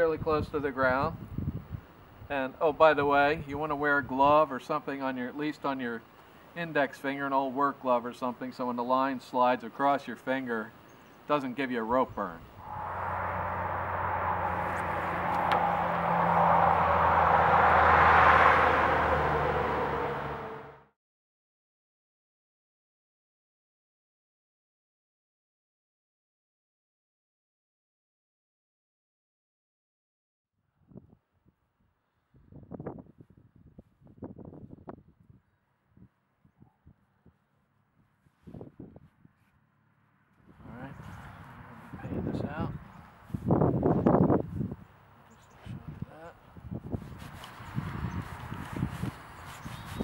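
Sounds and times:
wind buffeting microphone: 0.0s - 2.3s, 12.4s - 17.7s, 32.3s - 37.4s, 38.5s - 39.4s, 40.5s - 50.0s
low hum: 12.5s - 17.9s
steady rushing noise: 12.6s - 17.3s.

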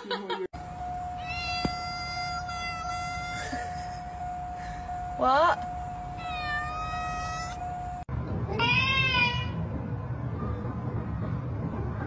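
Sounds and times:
faint high tone: 0.7s - 8.0s
cat meowing: 1.2s - 3.4s, 6.2s - 7.6s.

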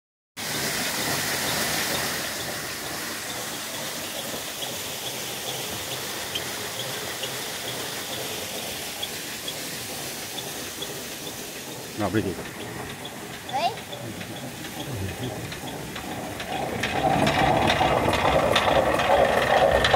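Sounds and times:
water rushing and splashing: 0.4s - 19.9s.

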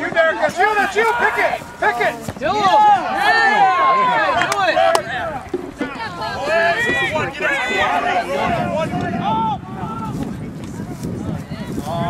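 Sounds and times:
people shouting: 0.0s - 10.0s.

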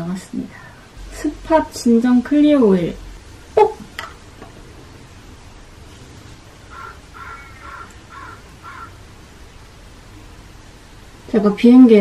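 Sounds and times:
crow cawing: 6.7s - 9.0s.

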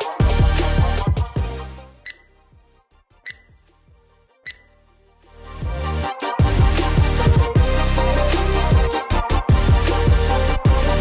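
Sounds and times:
high electronic beeps: 2.0s - 2.3s, 3.3s - 3.6s, 4.5s - 4.7s.

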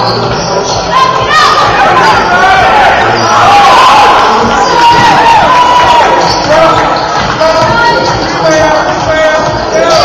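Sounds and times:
echoing voices: 0.0s - 10.0s.

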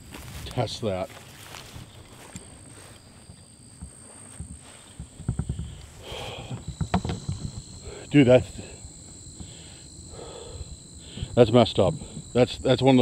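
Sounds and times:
rustling through tall grass: 0.0s - 6.2s
insects droning: 0.0s - 13.0s.

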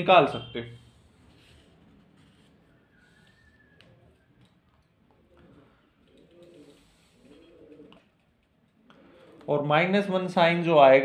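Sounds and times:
bird calling faintly: 0.4s - 9.7s.

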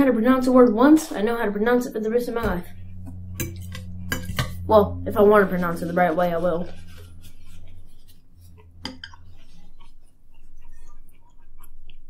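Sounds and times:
fork clinking and scraping plate: 3.4s - 4.6s, 8.7s - 9.9s.

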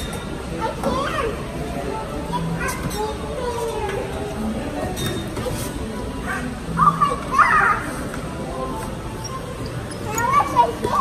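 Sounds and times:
young child's voice: 0.6s - 1.5s, 2.3s - 4.1s, 6.7s - 8.0s, 10.1s - 11.0s.

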